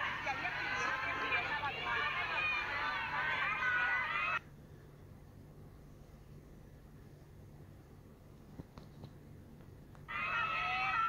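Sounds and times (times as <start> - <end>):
high-pitched voices: 0.0 - 4.4, 10.1 - 11.0
faint low hum: 0.0 - 11.0.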